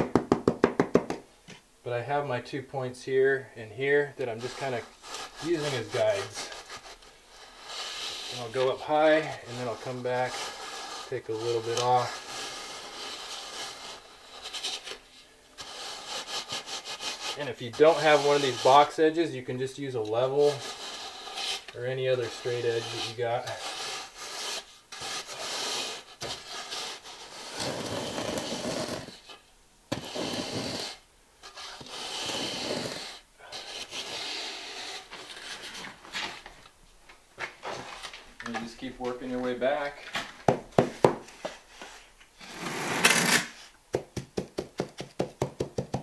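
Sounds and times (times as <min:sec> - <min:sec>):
straightedge scraping gritty mortar: 0:03.8 - 0:36.5.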